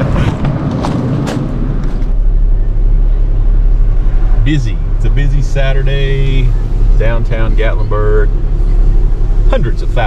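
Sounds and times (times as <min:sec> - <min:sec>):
engine droning: 0:00.0 - 0:10.0.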